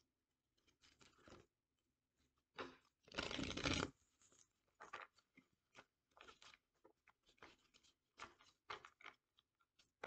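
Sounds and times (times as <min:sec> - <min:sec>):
cards riffle-shuffled: 0:03.1 - 0:03.9.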